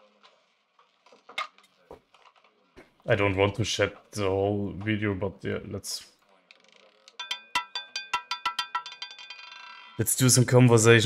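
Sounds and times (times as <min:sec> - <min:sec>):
roulette ball rattling: 0:00.2 - 0:03.0, 0:06.4 - 0:10.0.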